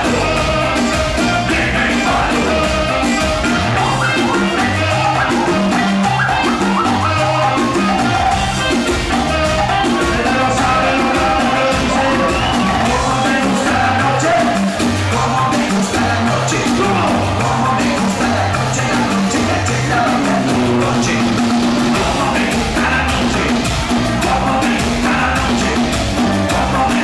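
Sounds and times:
live band music through pa: 0.0 - 27.0
person singing into microphone: 0.0 - 27.0
repeating bass beat: 0.0 - 27.0.

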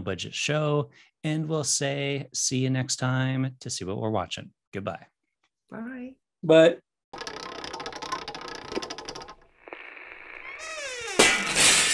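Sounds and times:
rapid clicking rattle: 7.2 - 9.5.

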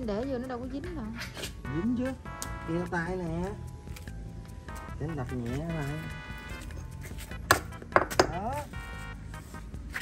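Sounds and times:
background music: 0.0 - 10.0
hammer cracking stone on concrete: 7.5 - 8.4.

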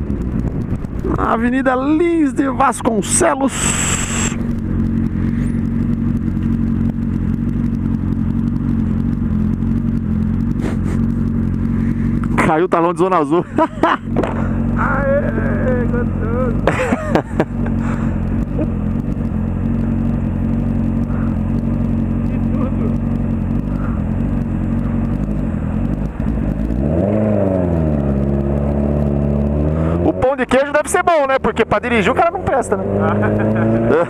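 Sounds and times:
motorcycle engine idling: 0.0 - 32.7.

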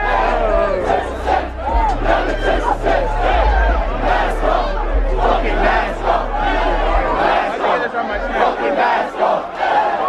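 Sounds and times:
large crowd yelling: 0.0 - 10.0.

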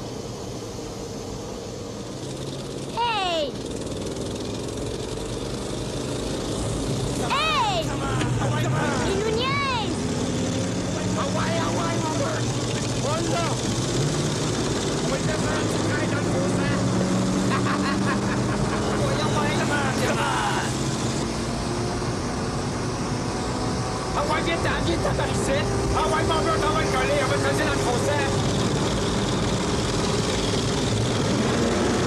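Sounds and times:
car engine and road noise: 0.0 - 32.0.

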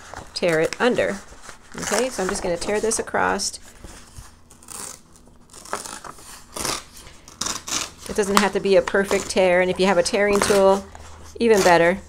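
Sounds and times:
paper tearing by hand: 4.4 - 9.4.

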